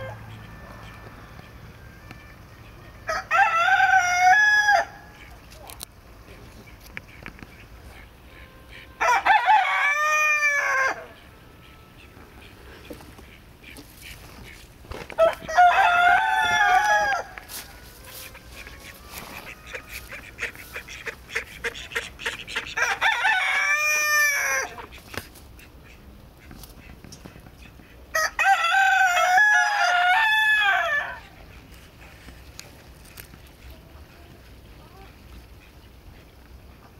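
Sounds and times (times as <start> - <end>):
rooster crowing: 0.0 - 5.1, 9.0 - 11.2, 15.1 - 20.3, 22.8 - 24.8, 28.1 - 31.4.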